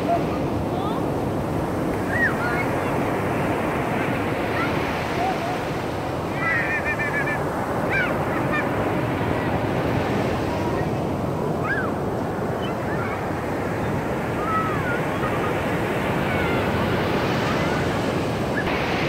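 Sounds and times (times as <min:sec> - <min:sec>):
surf breaking on beach: 0:00.0 - 0:19.0.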